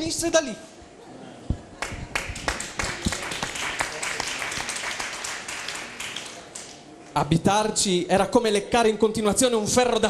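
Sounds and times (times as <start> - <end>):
audience applauding: 1.8 - 6.9.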